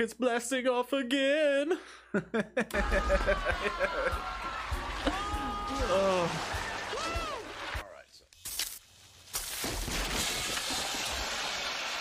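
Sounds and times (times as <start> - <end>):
explosion: 9.5 - 12.0.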